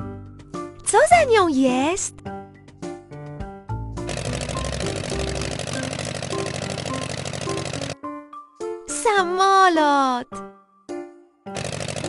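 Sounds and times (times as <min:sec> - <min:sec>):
light background music: 0:00.0 - 0:12.0
propeller airplane engine buzz: 0:04.1 - 0:08.0, 0:11.6 - 0:12.0.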